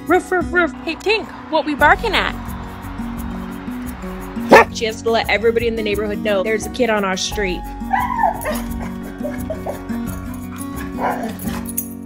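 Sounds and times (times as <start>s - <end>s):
background music: 0.0s - 12.0s
dog whining and barking: 7.9s - 9.8s, 10.5s - 11.8s.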